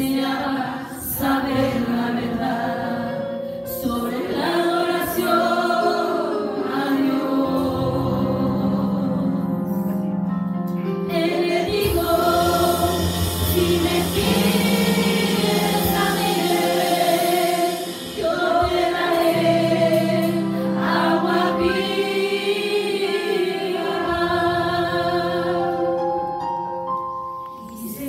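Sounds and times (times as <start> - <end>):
women singing a hymn: 0.0 - 10.1, 11.1 - 26.1, 27.6 - 28.0
low held accompaniment: 5.8 - 28.0.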